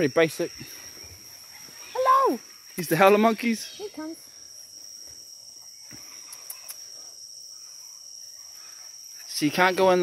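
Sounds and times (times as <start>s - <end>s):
insect chorus drone: 0.0s - 10.0s.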